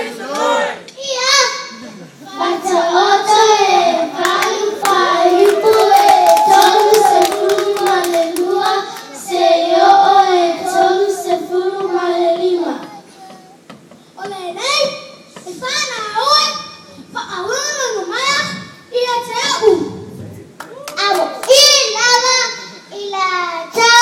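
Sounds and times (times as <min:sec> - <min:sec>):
children singing in unison: 0:02.3 - 0:13.4
hand claps: 0:04.2 - 0:09.1.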